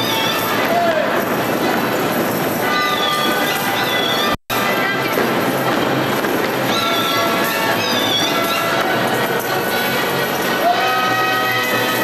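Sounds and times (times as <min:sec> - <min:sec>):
folk dance music: 0:00.0 - 0:12.0.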